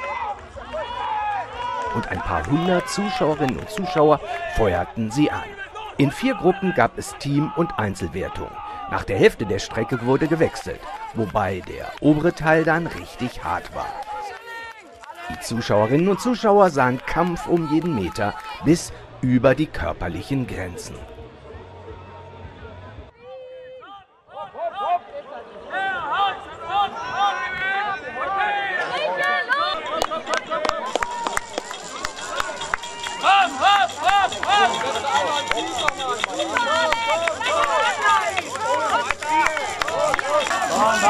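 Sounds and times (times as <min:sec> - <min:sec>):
crowd shouting and cheering: 0:00.0 - 0:41.0.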